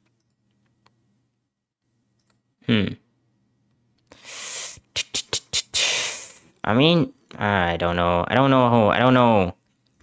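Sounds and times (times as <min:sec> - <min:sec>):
man humming hmm: 0:02.6 - 0:03.1
breathy mouth hiss: 0:04.1 - 0:06.5.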